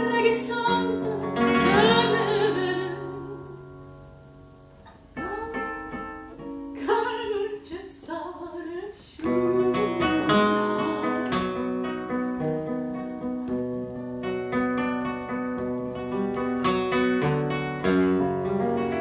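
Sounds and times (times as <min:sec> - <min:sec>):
person singing with vibrato: 0:00.0 - 0:03.7, 0:05.2 - 0:06.1, 0:06.8 - 0:11.7
nylon-string guitar playing: 0:00.0 - 0:19.0.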